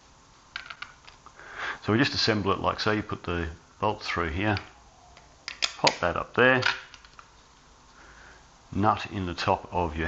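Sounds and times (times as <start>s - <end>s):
plastic parts clicking together: 4.6s - 6.0s, 6.6s - 7.3s.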